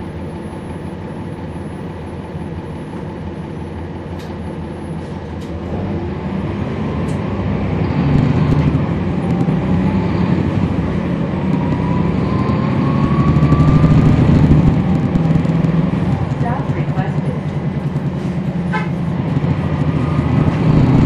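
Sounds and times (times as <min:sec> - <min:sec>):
bus diesel engine revving up: 0:05.0 - 0:21.0
rising whine: 0:05.7 - 0:16.4, 0:19.3 - 0:21.0.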